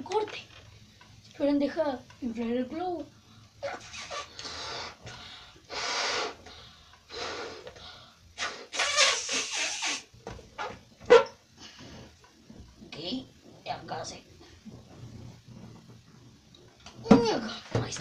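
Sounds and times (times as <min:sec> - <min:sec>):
breathy puffs into balloon: 0:03.6 - 0:10.2.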